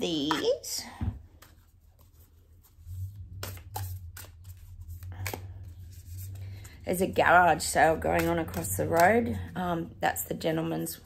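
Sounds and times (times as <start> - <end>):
cards being shuffled: 1.3 - 9.5
sharp card clicks and slaps: 3.3 - 4.6, 5.2 - 5.6.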